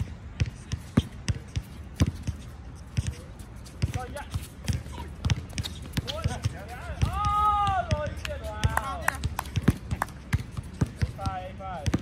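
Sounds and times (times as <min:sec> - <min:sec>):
basketball bouncing on hard court: 0:00.3 - 0:02.4, 0:03.8 - 0:12.0
person shouting: 0:07.1 - 0:08.0.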